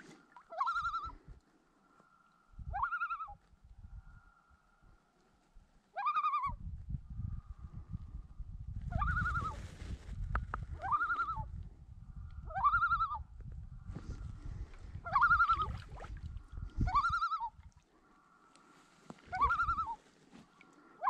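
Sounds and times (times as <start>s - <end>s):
loon calling: 0.3s - 1.2s, 2.7s - 3.4s, 5.9s - 6.6s, 10.8s - 11.5s, 12.5s - 13.2s, 15.0s - 15.8s, 16.8s - 17.6s, 19.2s - 20.0s.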